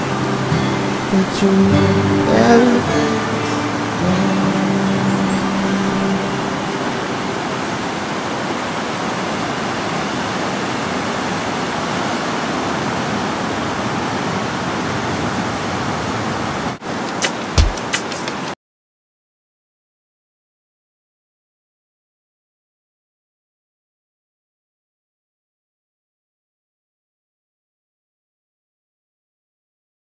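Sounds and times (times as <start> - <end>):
guitar song: 0.0 - 8.6
ocean surf breaking: 0.0 - 18.6.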